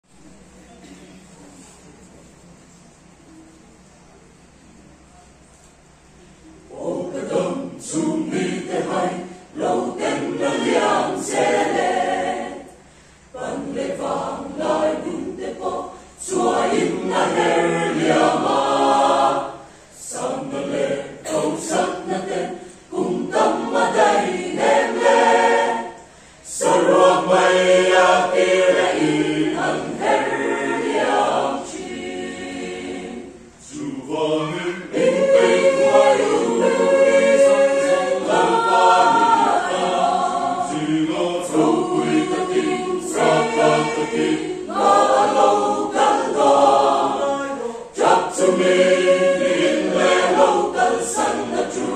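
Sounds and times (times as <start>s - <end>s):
mixed choir singing: 6.7s - 51.9s.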